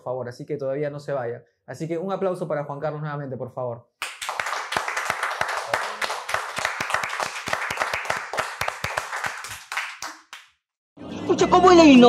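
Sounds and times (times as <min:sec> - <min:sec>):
people applauding: 0:04.0 - 0:10.5.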